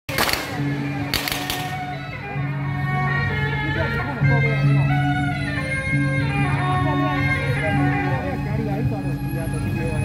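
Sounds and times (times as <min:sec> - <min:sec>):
sharp percussive cracks: 0:00.1 - 0:01.9
wind instruments holding notes: 0:00.1 - 0:10.0.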